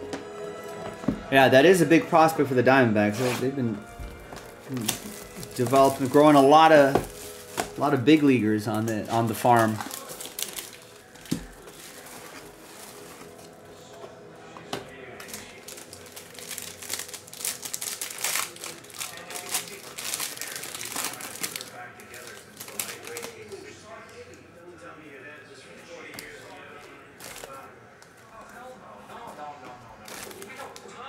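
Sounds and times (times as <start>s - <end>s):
plastic wrapper crinkling: 3.2s - 13.6s, 15.2s - 23.8s, 26.2s - 28.7s, 30.0s - 31.0s.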